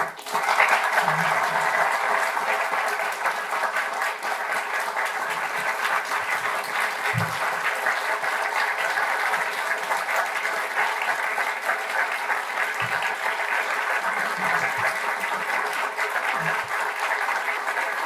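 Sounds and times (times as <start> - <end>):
large audience clapping: 0.0 - 18.0.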